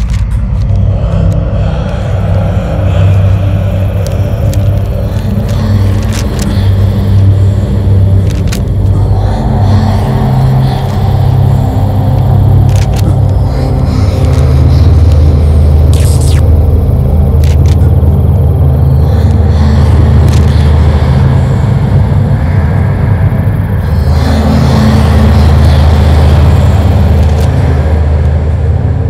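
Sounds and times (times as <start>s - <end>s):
deep rumbling horror drone: 0.0s - 29.0s.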